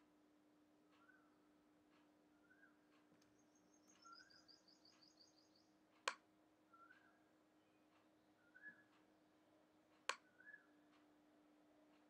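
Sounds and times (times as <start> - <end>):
faint steady hum: 0.0 - 12.0
high bird chirps: 3.3 - 5.7.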